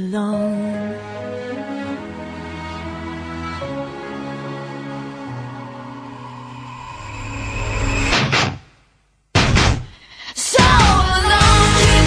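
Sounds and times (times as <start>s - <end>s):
loud hits: 6.2s - 10.0s.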